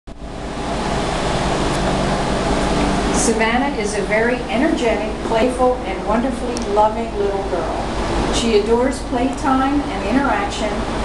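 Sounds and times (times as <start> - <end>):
steady rushing noise: 0.1 - 11.0.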